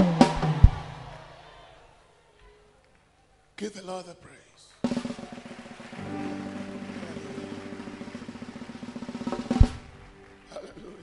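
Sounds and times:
rapid drum roll: 4.8 - 10.3
sustained band chord: 6.0 - 10.5.

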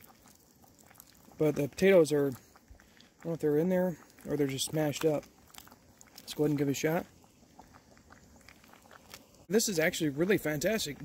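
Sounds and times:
soft chewing: 0.0 - 9.5.

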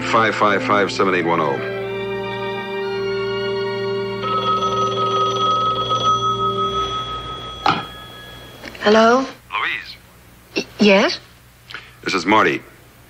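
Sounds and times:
held music chords: 0.0 - 8.8
telephone bell ringing: 1.9 - 9.2.

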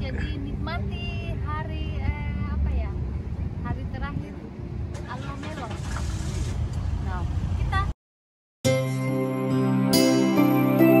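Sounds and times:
people talking: 0.0 - 5.9, 7.0 - 8.0
ferry engine humming: 0.0 - 7.9.

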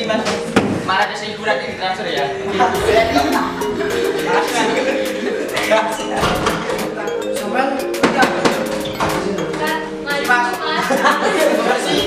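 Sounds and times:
background music with steady beat: 0.0 - 12.0
people's voices: 0.0 - 12.0.

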